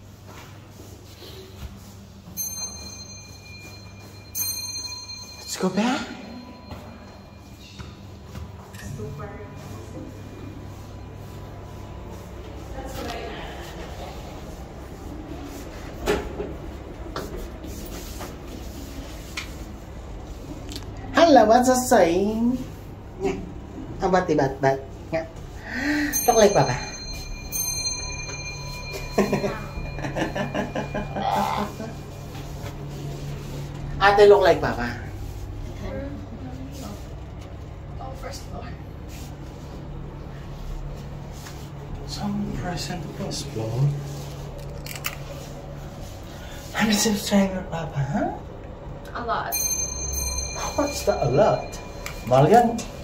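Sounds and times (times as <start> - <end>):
elevator arrival chime: 1.8 - 12.3, 23.5 - 35.9, 49.2 - 53.0.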